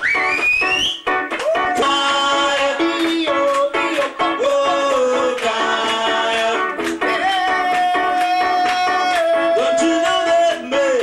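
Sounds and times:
strummed guitar chords: 1.0 - 11.0
man shrieking and singing: 7.2 - 11.0.

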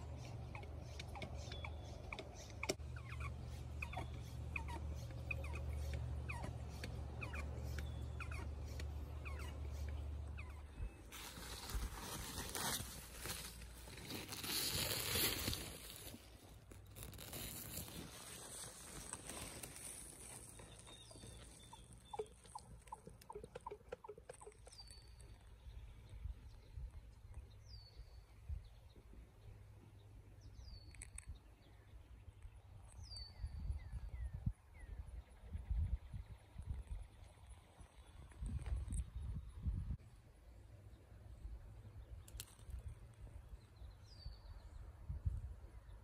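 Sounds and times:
birds chirping: 0.0 - 11.8, 17.0 - 39.9
short pitched animal calls: 0.5 - 11.0.

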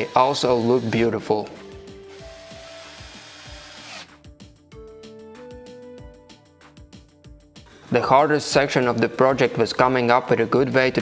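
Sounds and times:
cordless drill driving screw: 0.0 - 1.2, 2.1 - 4.2.

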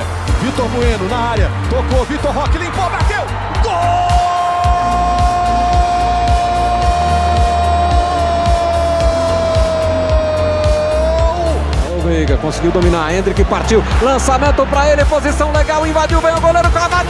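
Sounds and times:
background music with steady beat: 0.0 - 17.0
commentator's long goal shout: 2.9 - 12.0.

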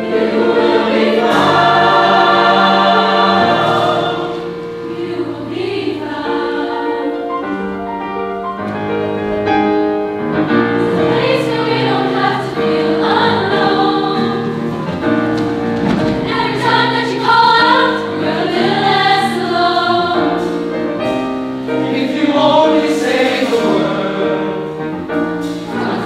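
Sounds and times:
choir of young singers: 0.0 - 8.1, 10.4 - 26.0
piano chords: 0.0 - 26.0.

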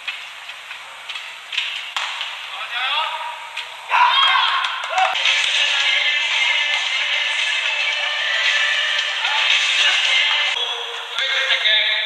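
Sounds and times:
murmur of arena crowd: 2.8 - 12.0
person shouting: 3.9 - 5.2.

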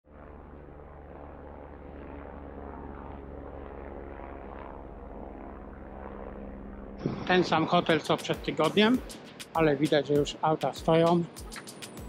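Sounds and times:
drone propellers buzzing: 0.1 - 12.0.

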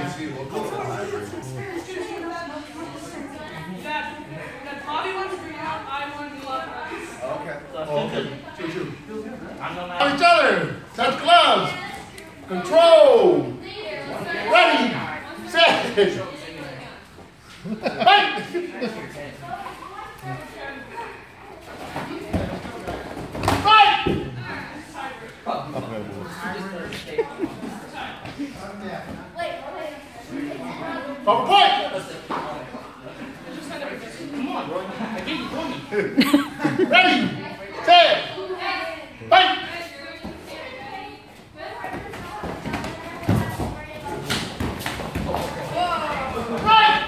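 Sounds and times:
people's voices in large room: 0.0 - 47.0.

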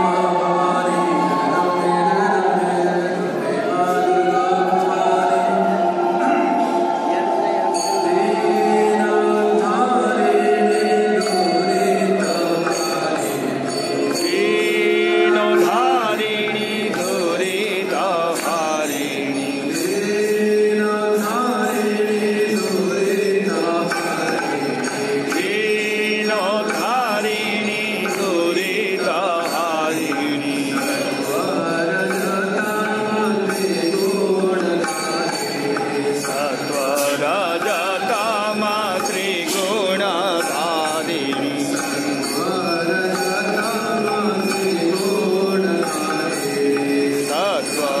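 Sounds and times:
voices chanting mantras: 0.0 - 48.0.

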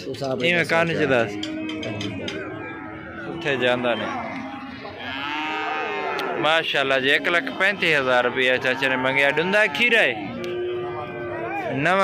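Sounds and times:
bull mooing: 2.4 - 9.6.

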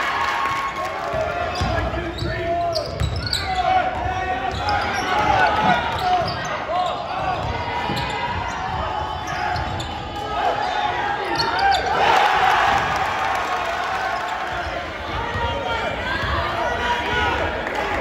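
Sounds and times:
crowd noise: 0.0 - 18.0
sneakers squeaking: 1.1 - 12.1.

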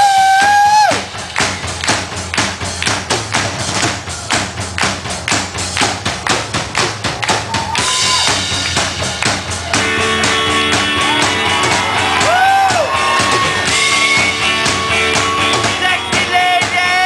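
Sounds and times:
rock drum kit beat: 0.0 - 17.0.

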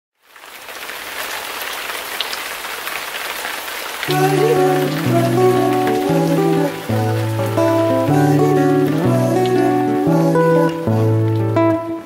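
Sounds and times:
steady rain falling: 0.2 - 12.0.

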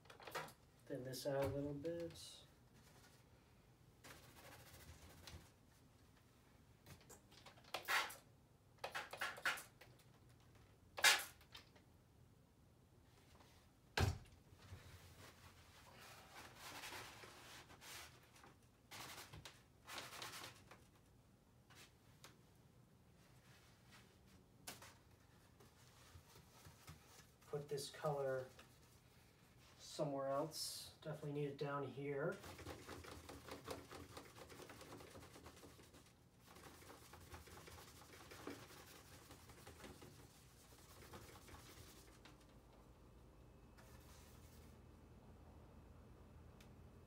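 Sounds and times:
paint brush strokes on paper: 32.3 - 42.4, 43.8 - 44.8.

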